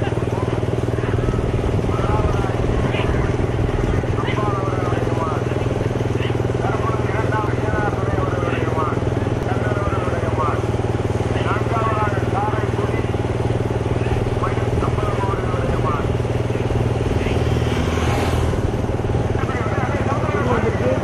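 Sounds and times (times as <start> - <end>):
vehicle engine running steadily: 0.0 - 21.0.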